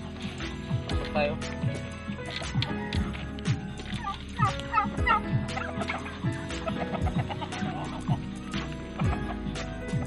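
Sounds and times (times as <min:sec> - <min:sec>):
background music with beat: 0:00.0 - 0:10.0
turkey gobbling: 0:03.8 - 0:09.5.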